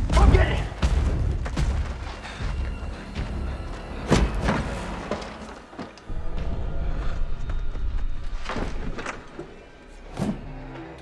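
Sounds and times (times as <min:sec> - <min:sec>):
film score music: 0:00.0 - 0:11.0.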